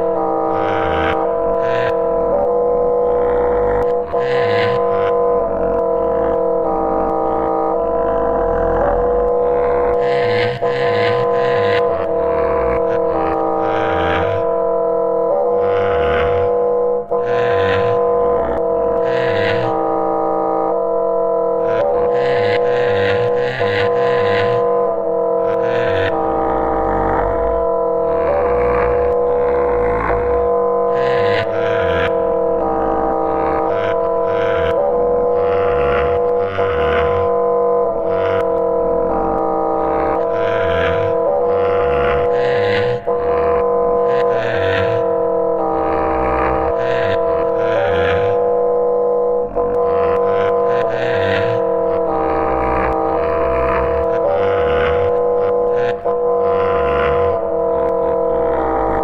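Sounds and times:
choppy low pulses: 0.0s - 59.0s
electronic drone chord: 0.0s - 59.0s.

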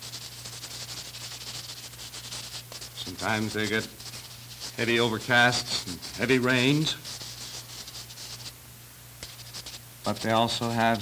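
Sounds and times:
chalk scratching on paper: 0.0s - 8.5s, 9.2s - 11.0s
film soundtrack hum and hiss: 0.0s - 11.0s.

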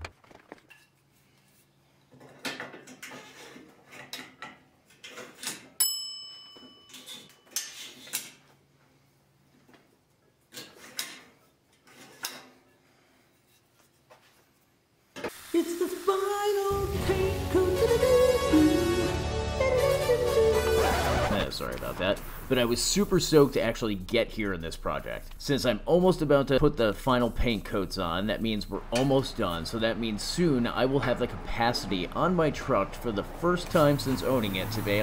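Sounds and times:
music: 16.3s - 21.4s.

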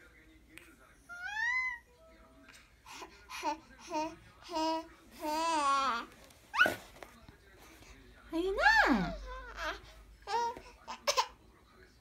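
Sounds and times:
baby cooing: 8.9s - 11.3s.

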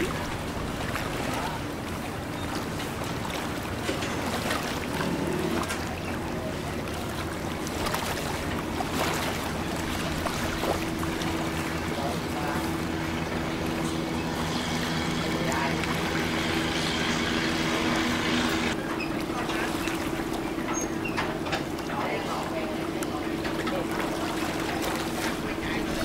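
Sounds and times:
boat engine running: 0.0s - 26.0s
water wash: 0.0s - 26.0s
wind: 0.0s - 26.0s.

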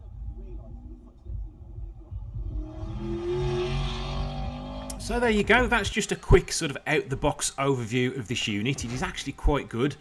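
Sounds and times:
race car engine through speakers: 1.8s - 5.7s.

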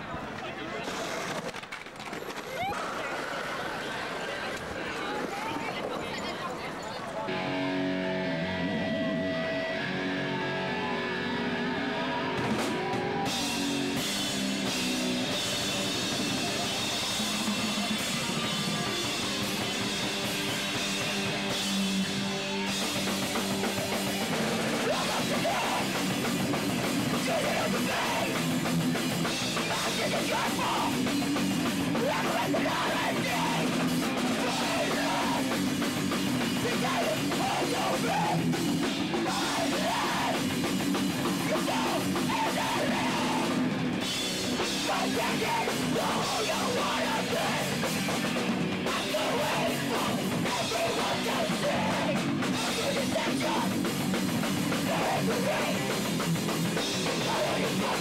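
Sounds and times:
distorted electric guitar: 7.3s - 58.0s
shouted vocals: 8.0s - 14.0s, 22.2s - 28.7s, 29.5s - 43.6s, 44.5s - 58.0s
drums and cymbals: 12.4s - 58.0s.

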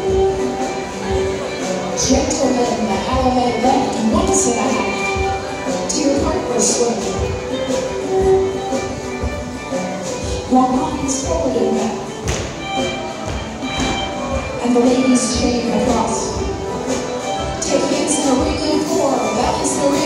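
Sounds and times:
dance band playing: 0.0s - 20.0s
footsteps on wooden floor: 12.2s - 14.6s.

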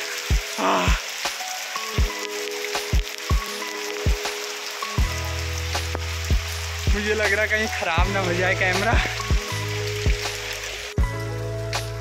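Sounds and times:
music with held notes: 0.0s - 12.0s
rain falling: 0.0s - 12.0s
deep bass line: 5.0s - 12.0s.

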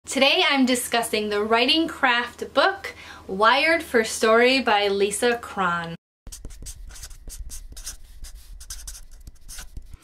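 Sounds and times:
pen scratching on paper: 6.3s - 10.0s.

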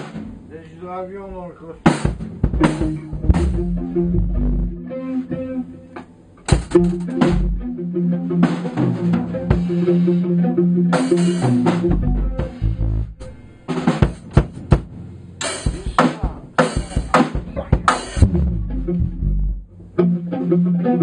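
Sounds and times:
drum hits and cymbal crashes: 0.0s - 0.5s, 1.8s - 4.0s, 6.5s - 7.6s, 11.0s - 18.7s
low bass notes: 2.3s - 5.8s, 6.5s - 13.8s, 15.8s - 20.2s
electric guitar chords: 2.3s - 13.9s, 16.6s - 21.0s.

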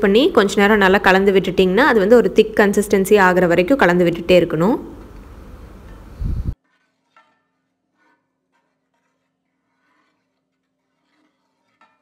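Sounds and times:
wooden spatula scraping pan: 6.6s - 12.0s.

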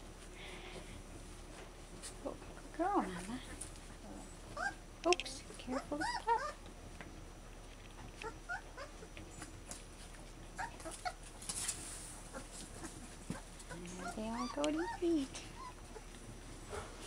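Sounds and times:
puppies squeaking and whimpering: 4.2s - 4.8s, 5.7s - 6.7s, 8.1s - 9.5s, 10.5s - 11.3s, 12.3s - 16.2s
rustle: 7.6s - 17.0s.

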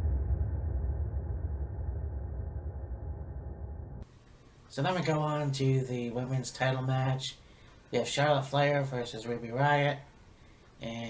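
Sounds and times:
deep muffled bass rumble: 0.0s - 4.0s.

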